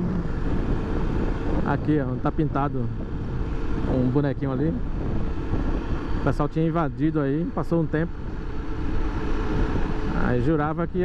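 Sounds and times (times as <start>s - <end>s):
motorcycle engine cruising: 0.0s - 11.0s
wind and road noise on microphone: 0.0s - 11.0s.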